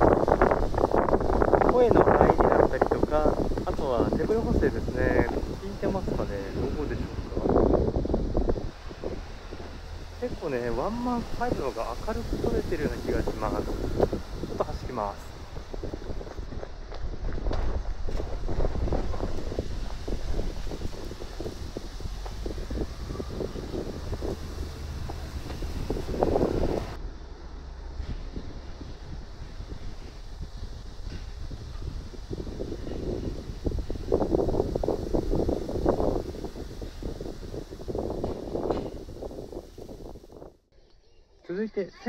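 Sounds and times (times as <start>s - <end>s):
wind noise on microphone: 0.0s - 41.2s.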